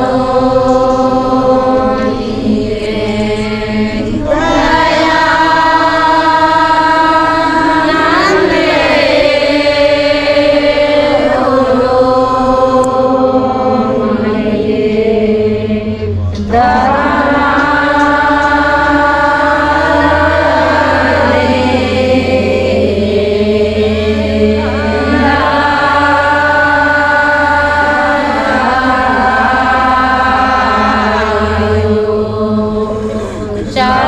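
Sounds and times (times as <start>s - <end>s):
crowd chanting in unison: 0.0s - 34.0s.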